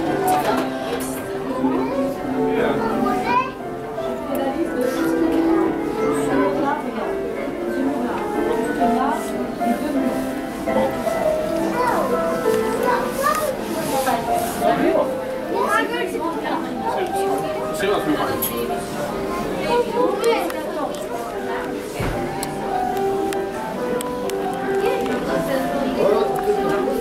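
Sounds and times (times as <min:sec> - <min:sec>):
background music: 0:00.0 - 0:27.0
chatter of shoppers: 0:00.0 - 0:27.0
child's voice: 0:01.6 - 0:02.1, 0:02.8 - 0:03.6, 0:11.6 - 0:14.0.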